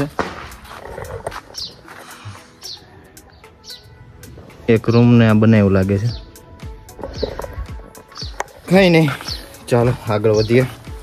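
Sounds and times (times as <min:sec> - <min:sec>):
bird chirping: 0:01.4 - 0:11.0.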